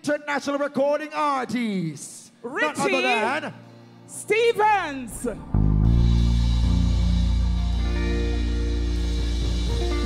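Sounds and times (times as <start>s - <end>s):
held keyboard chords: 5.0s - 10.0s
deep bass: 5.1s - 10.0s
drums: 5.1s - 10.0s.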